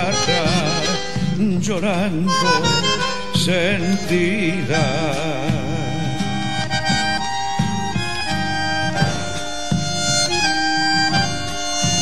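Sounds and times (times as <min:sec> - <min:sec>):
folk instrumental with held melody: 0:00.0 - 0:12.0.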